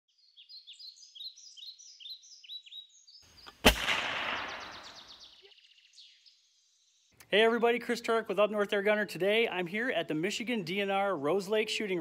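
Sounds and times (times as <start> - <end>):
bird chirping: 0.1 - 8.2
gunshot with echo: 3.5 - 5.2.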